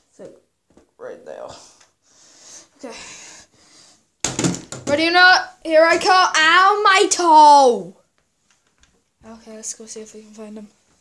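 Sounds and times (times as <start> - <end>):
person speaking: 4.8 - 8.0.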